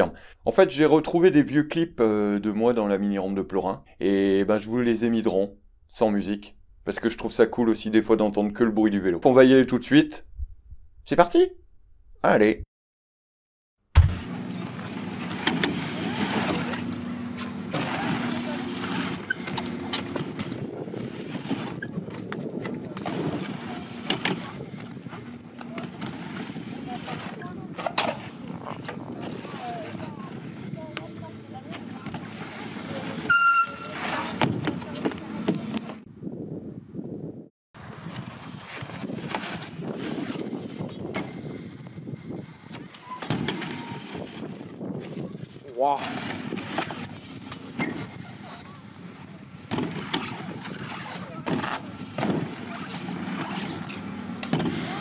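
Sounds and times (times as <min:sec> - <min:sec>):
bike tyres rolling on ramp: 0:14.0 - 0:36.1, 0:37.8 - 0:55.0
high squeak: 0:32.1 - 0:34.9, 0:42.9 - 0:44.2.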